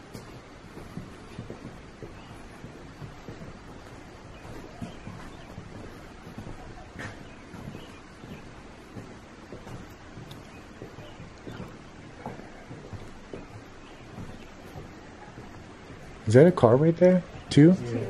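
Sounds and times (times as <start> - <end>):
footsteps on wooden floor: 0.0 - 18.0
steady background hiss: 0.0 - 18.0.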